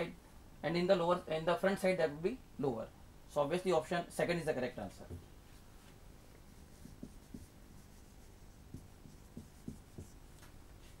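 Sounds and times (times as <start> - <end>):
marker pen writing on whiteboard: 6.4 - 11.0.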